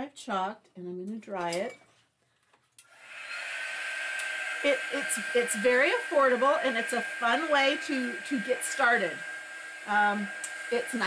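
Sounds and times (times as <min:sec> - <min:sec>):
handheld dryer fan whirring: 0:02.8 - 0:11.0.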